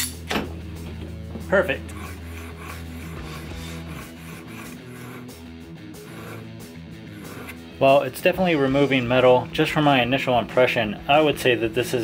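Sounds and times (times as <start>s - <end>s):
guitar background music: 0.0s - 12.0s.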